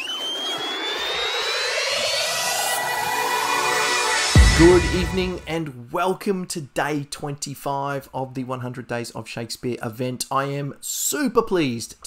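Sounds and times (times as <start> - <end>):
low rising sweep: 0.0 - 5.6
whooshing riser with high tone: 0.0 - 5.6.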